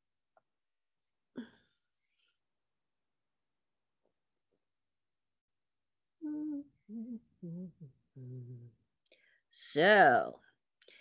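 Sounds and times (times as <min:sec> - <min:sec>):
person humming: 0:06.2 - 0:08.8.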